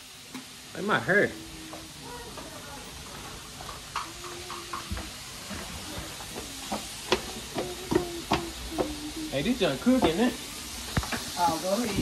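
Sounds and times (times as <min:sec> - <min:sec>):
hot oil sizzling and popping: 0:00.0 - 0:12.0.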